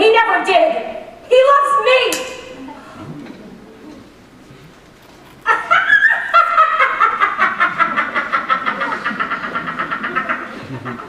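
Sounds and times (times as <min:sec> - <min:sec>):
high voice laughing: 0:05.4 - 0:11.0.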